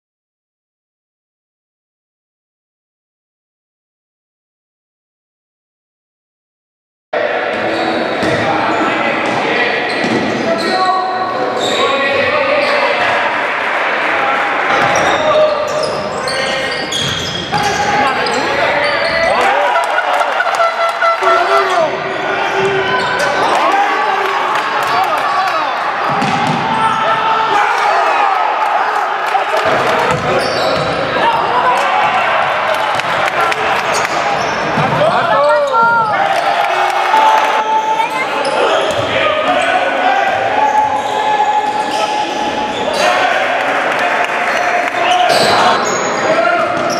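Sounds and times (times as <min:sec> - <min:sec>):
indistinct voices: 0:07.2 - 0:27.5
basketball bouncing on court: 0:08.2 - 0:08.5, 0:26.1 - 0:26.8, 0:29.6 - 0:31.0, 0:38.9 - 0:39.2.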